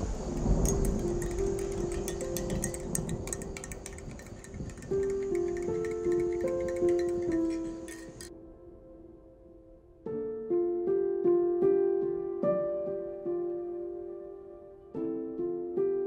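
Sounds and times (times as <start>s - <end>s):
slow music of held notes: 0.0s - 16.0s
spoon clinking in glass mug: 0.3s - 8.3s.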